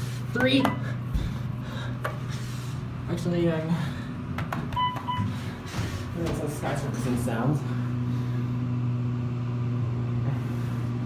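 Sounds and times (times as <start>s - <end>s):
elevator low hum: 0.0s - 11.0s.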